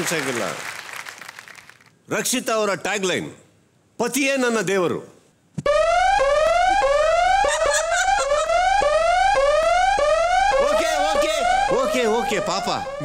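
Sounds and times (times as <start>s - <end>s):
man speaking: 10.6s - 13.0s.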